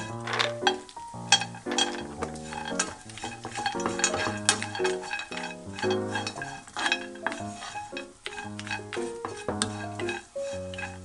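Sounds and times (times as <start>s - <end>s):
almonds clicking into frying pan: 0.0s - 10.9s
food frying in oil: 0.0s - 11.0s
light background music: 0.0s - 11.0s
wooden spatula scraping pan: 0.0s - 11.0s.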